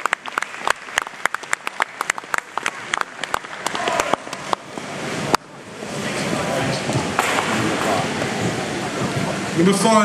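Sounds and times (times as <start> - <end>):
applause: 0.0 - 4.7
crowd voices: 2.5 - 10.0.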